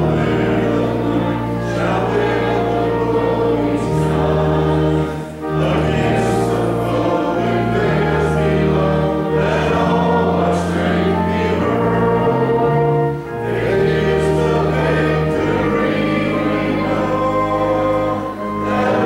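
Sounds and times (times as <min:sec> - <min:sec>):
congregation singing a hymn: 0:00.0 - 0:19.0
organ accompaniment: 0:00.0 - 0:19.0.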